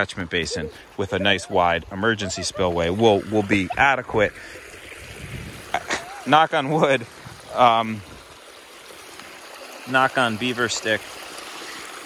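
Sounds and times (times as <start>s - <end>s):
water rushing from pipes: 0.0s - 12.0s.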